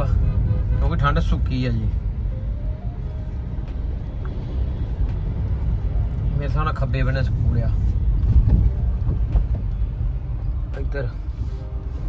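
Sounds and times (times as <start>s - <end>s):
car driving rumble inside cabin: 0.0s - 12.0s.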